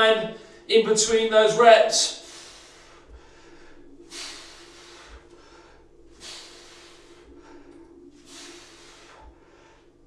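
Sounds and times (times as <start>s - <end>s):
man breathing out hard: 2.1s - 10.0s.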